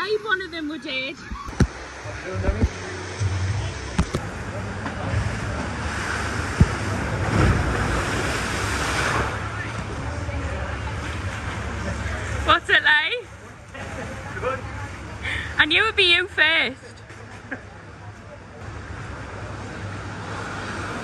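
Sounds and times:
water rushing and splashing: 0:01.5 - 0:15.2.

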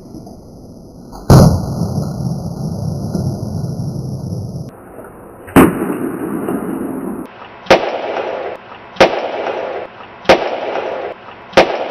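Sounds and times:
egg exploding bangs: 0:01.2 - 0:04.7.

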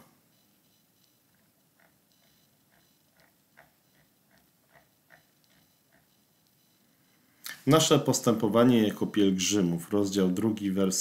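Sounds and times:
faint regular ticking: 0:00.2 - 0:07.6.

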